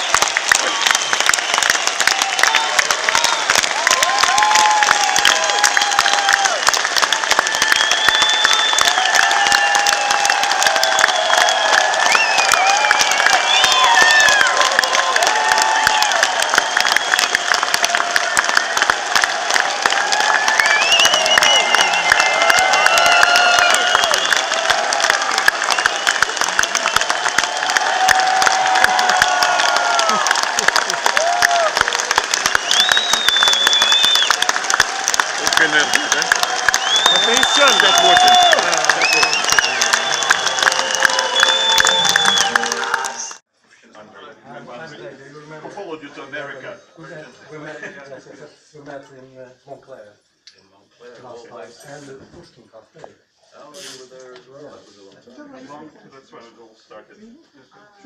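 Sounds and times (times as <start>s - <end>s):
audience clapping: 0.0s - 43.5s.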